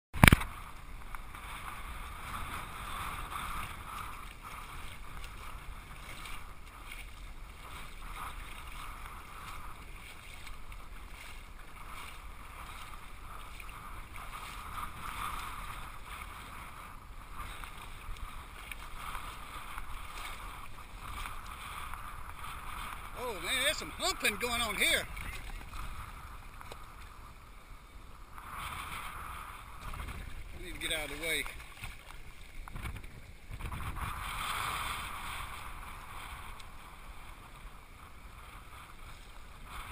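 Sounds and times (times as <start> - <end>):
sea water lapping and sloshing: 0.2 - 39.9.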